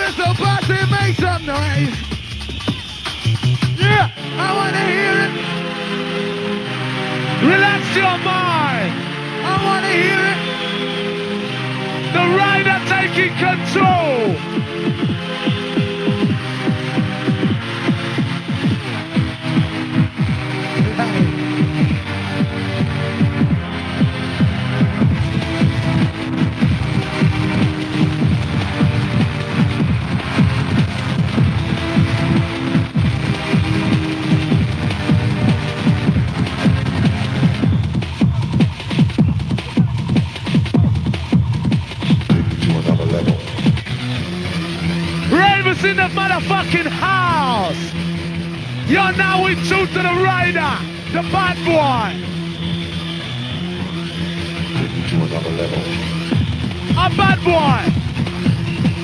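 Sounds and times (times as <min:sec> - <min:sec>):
breakbeat drums: 0:00.0 - 0:04.2, 0:12.2 - 0:48.0, 0:54.1 - 0:59.0
hardcore rave music: 0:00.0 - 0:59.0.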